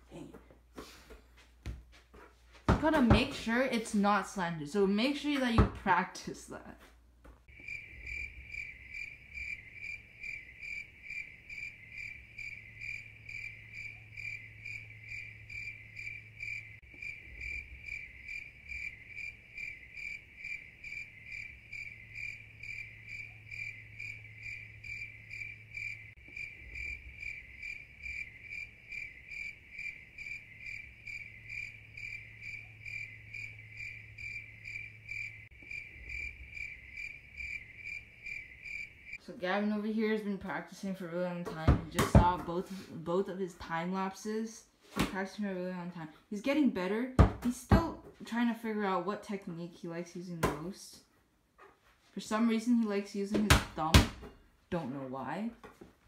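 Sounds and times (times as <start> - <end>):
cricket chirping: 7.5 - 39.2.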